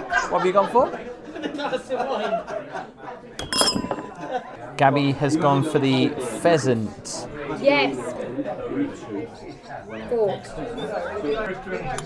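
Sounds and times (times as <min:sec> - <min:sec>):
faint restaurant chatter: 0:00.0 - 0:12.0
tableware clinking: 0:03.4 - 0:04.4.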